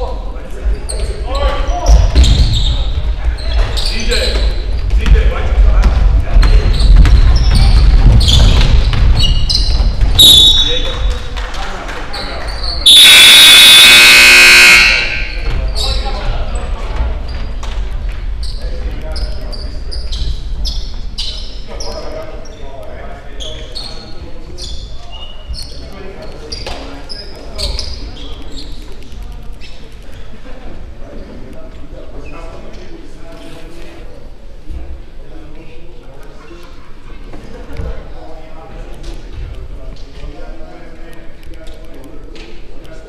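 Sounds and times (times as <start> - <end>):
voices in a hall: 0.0 - 43.0
scoreboard horn buzzing: 12.9 - 15.4.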